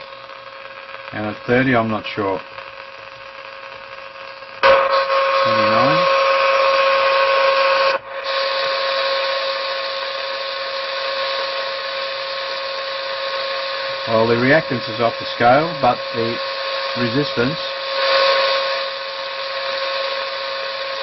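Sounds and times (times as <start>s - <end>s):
radio receiver hiss: 0.0s - 21.0s.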